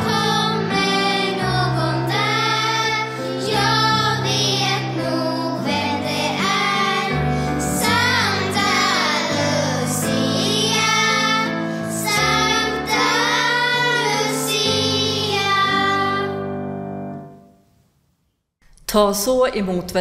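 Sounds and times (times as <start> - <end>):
children singing: 0.0 - 16.7.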